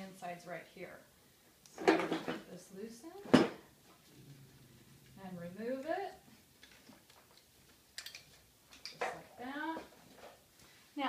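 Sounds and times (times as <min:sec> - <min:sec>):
woman's voice: 0:00.0 - 0:01.0, 0:02.3 - 0:03.4, 0:05.2 - 0:06.2, 0:09.3 - 0:09.9.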